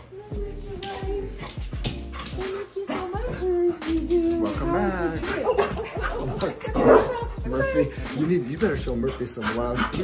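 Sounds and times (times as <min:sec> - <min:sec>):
dog making excited sounds: 0:00.9 - 0:10.0
people's voices: 0:02.4 - 0:10.0.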